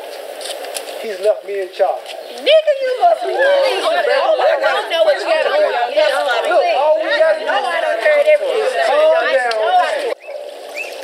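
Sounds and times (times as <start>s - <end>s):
people talking over one another: 1.0s - 10.4s.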